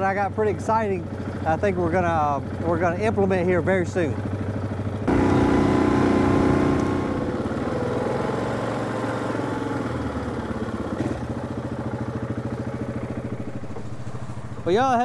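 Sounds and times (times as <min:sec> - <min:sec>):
quad bike engine running: 0:00.0 - 0:15.0.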